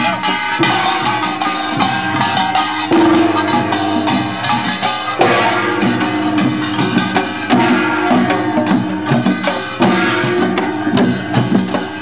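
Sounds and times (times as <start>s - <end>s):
folk drums in quick rhythm: 0.0s - 12.0s
ringing tones: 0.0s - 12.0s
loud drum hit: 0.6s - 12.0s.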